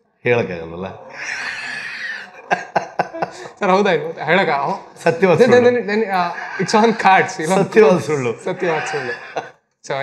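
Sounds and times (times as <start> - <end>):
man laughing: 2.2 - 9.5.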